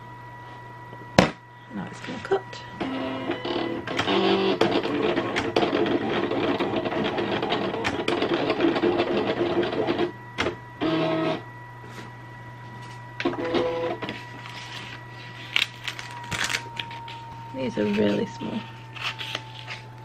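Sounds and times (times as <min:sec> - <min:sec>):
steady low hum: 0:00.0 - 0:20.0
cutting plotter motors whirring: 0:02.0 - 0:11.8, 0:12.4 - 0:20.0.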